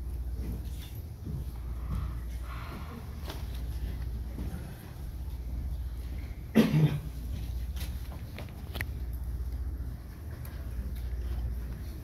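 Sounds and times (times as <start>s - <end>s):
low room hum: 0.0s - 12.0s
person coughing: 6.5s - 7.2s.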